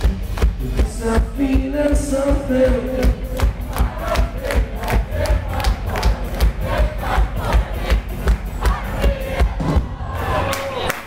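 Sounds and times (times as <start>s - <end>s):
drum hits: 0.0s - 10.5s
audience noise: 0.0s - 11.0s.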